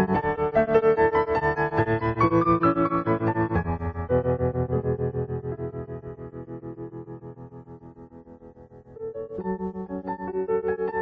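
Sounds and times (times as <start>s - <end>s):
synthesizer classical music: 0.0s - 11.0s.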